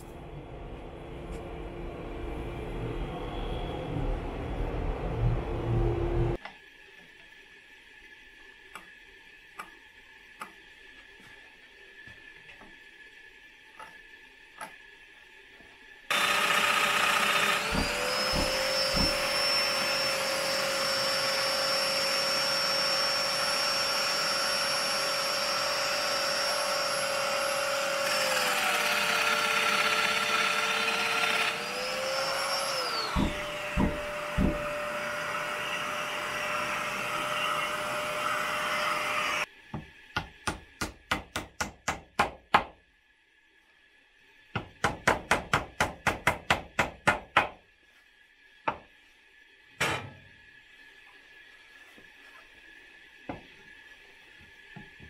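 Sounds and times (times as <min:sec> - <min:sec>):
joiner motor running: 0:16.1 - 0:39.4
dust extractor: 0:16.1 - 0:39.5
knocks of cutting machine: 0:17.5 - 0:19.4, 0:33.0 - 0:34.8.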